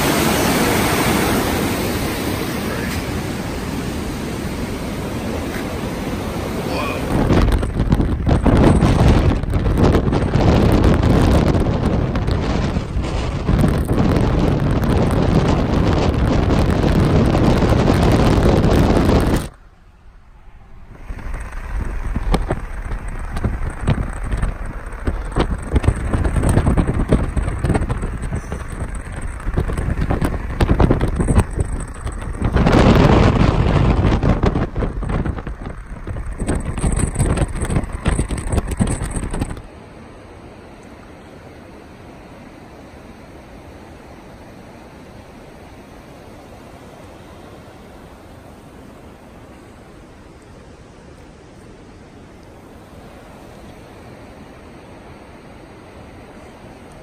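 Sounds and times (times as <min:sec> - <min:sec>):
wind buffeting microphone: 0:00.0 - 0:19.6, 0:20.2 - 0:39.8
road noise inside moving car: 0:00.0 - 0:57.0.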